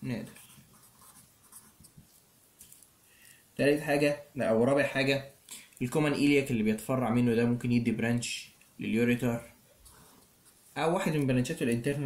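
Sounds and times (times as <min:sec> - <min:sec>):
marker scratching on paper: 0:00.2 - 0:02.8.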